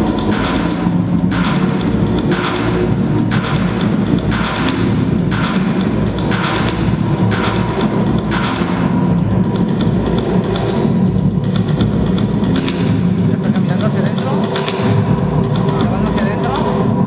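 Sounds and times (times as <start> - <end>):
electronic music with low drone: 0.0 - 17.0
swishing beat: 0.0 - 17.0.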